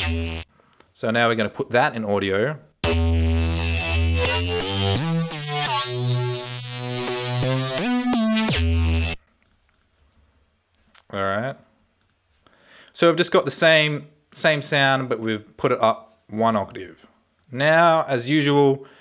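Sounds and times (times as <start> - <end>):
synthesizer bass melody gliding: 0.0 - 0.4, 2.8 - 9.2.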